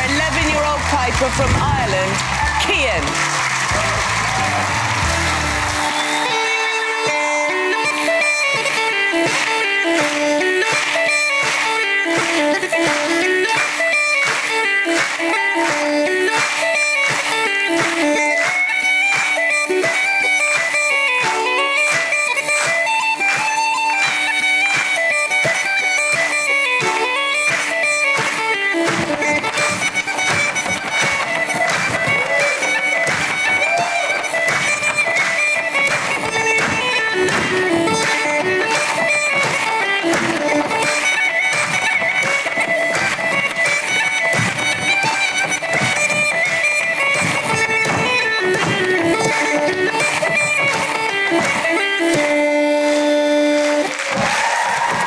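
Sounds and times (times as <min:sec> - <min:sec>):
bagpipe melody: 0:00.0 - 0:55.0.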